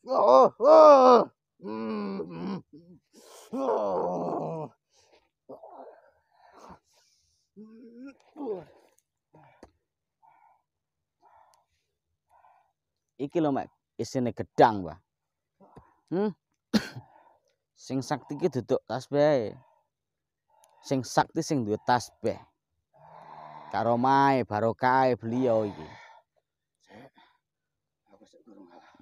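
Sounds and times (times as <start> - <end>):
person groaning: 0.0 - 4.7, 7.6 - 8.8
sharp cough: 16.7 - 17.1.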